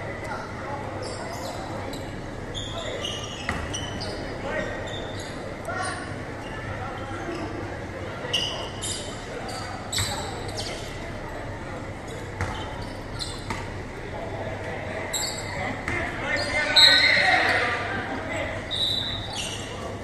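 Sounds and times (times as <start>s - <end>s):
people's voices: 0.0s - 20.0s
sneakers squeaking on court: 0.9s - 6.6s, 7.2s - 11.2s, 12.1s - 13.8s, 15.0s - 17.8s, 18.5s - 20.0s.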